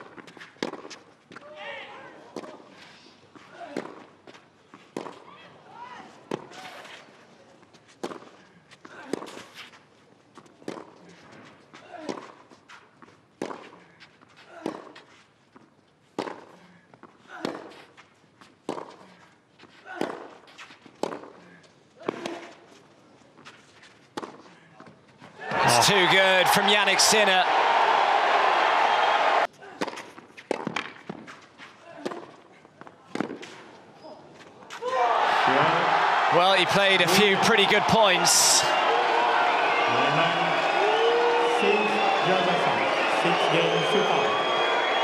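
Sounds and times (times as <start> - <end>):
racquets striking tennis ball: 29.3 - 31.4.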